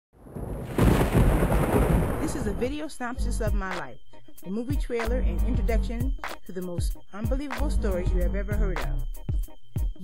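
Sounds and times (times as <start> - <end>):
thunder rumbling and cracking: 0.2 - 2.8.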